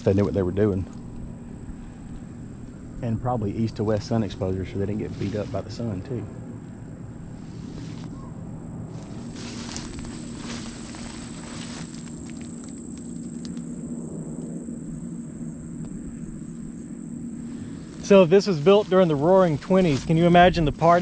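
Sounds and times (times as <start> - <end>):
faint high whine: 0.0 - 21.0
steady low hum: 0.0 - 21.0.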